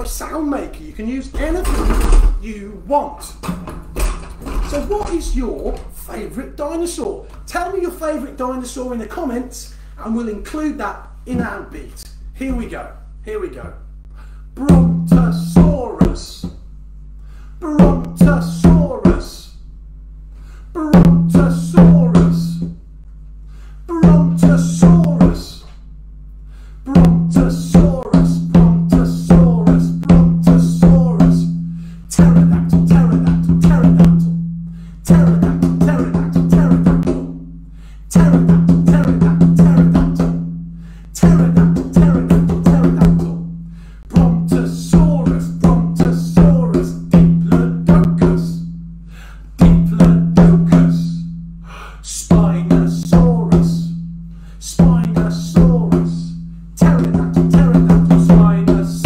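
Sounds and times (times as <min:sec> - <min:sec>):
hand drum beat: 0:32.2 - 0:34.4, 0:35.1 - 0:37.5, 0:38.2 - 0:40.6, 0:41.2 - 0:43.6, 0:44.2 - 0:48.8, 0:56.8 - 0:59.0.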